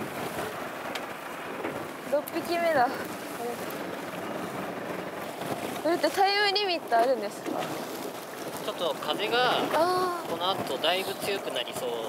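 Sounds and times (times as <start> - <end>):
sea waves: 0.0 - 12.0
wind: 0.0 - 12.0.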